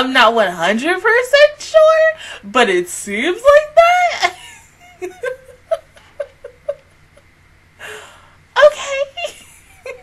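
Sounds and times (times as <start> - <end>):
woman laughing quietly: 4.3 - 8.3, 9.2 - 10.0
woman breathing in: 7.8 - 8.5.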